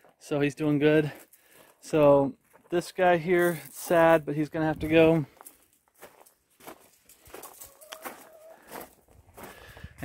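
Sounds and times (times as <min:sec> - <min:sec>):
footsteps on gravel: 0:00.0 - 0:10.0
chickens clucking: 0:07.4 - 0:09.0.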